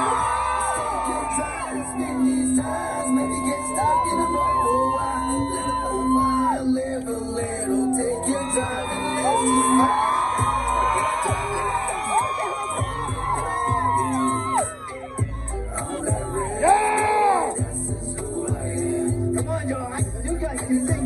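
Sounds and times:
crowd shouting and whooping: 0:00.0 - 0:21.0
hip-hop beat with heavy bass: 0:00.0 - 0:21.0.

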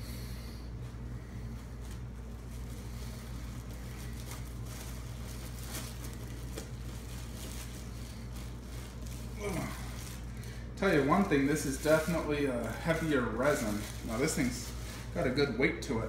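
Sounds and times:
steady low hum: 0:00.0 - 0:16.0
plastic bag crinkling: 0:00.8 - 0:16.0.

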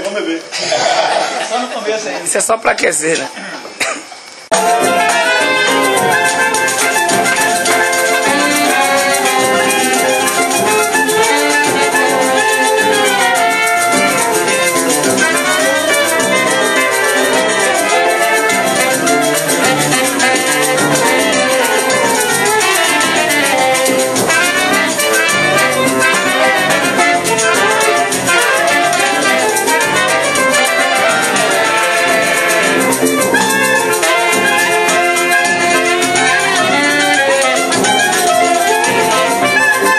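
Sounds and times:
metal shaker rhythm: 0:04.1 - 0:39.9
clarinet: 0:04.5 - 0:39.9
saxophone: 0:04.5 - 0:39.9
trumpet: 0:04.5 - 0:39.9.

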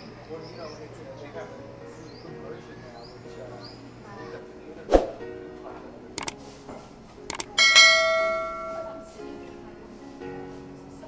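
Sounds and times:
soft background music: 0:00.0 - 0:11.0
quick clicks: 0:06.2 - 0:06.4, 0:07.3 - 0:07.6
bright bell-like chime: 0:07.6 - 0:09.1.

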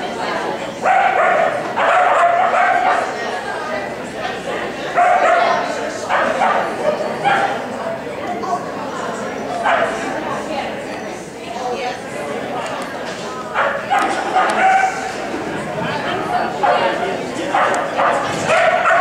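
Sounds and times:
dog barking and yipping: 0:00.9 - 0:03.0, 0:13.6 - 0:15.0, 0:17.6 - 0:19.0.

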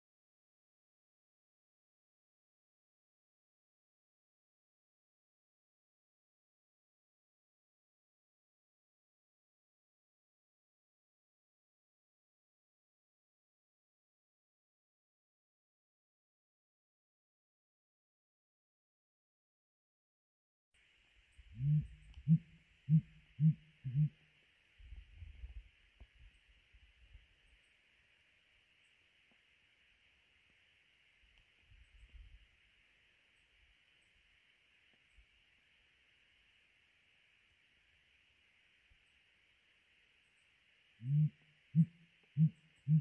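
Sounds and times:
grouse hooting: 0:21.6 - 0:24.2.

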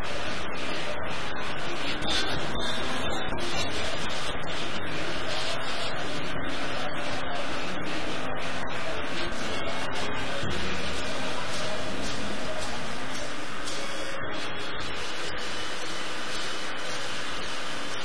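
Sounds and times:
analogue synth noise: 0:00.0 - 0:18.0.

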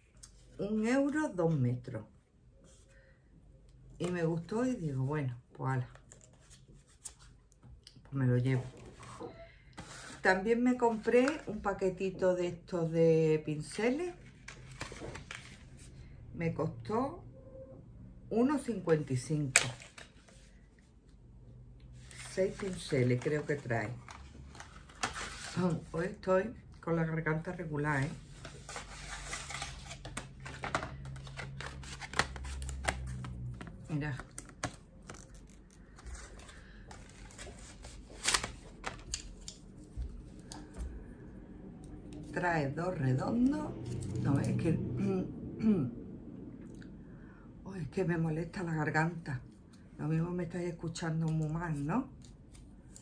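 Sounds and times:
packaging clicks and rustles: 0:28.4 - 0:40.6.

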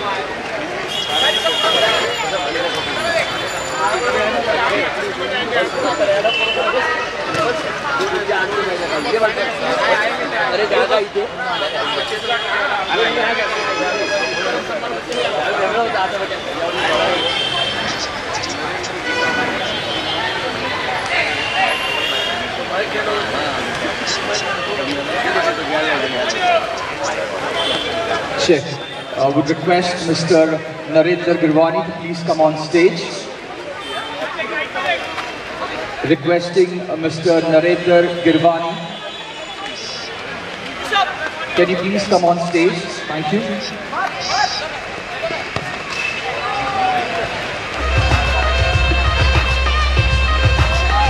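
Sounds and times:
crowd talking and shouting: 0:00.0 - 0:51.0.

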